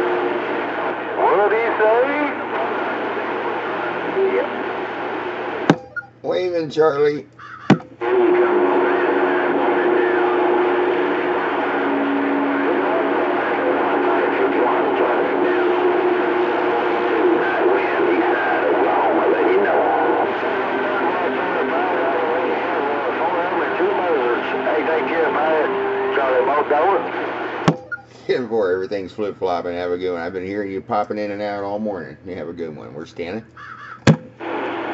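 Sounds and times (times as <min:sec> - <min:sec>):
garbled radio voices: 0:00.0 - 0:29.6, 0:33.4 - 0:34.9
radio static: 0:00.0 - 0:30.1, 0:33.4 - 0:34.9.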